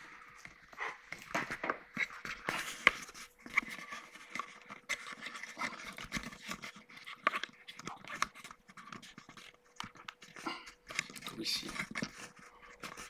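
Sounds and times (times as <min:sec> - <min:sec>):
camera handling rustles and clicks: 0:00.0 - 0:13.0.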